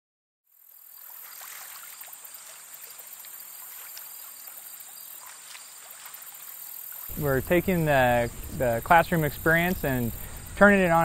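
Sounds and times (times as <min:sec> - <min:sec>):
insects hissing: 0:00.5 - 0:11.0.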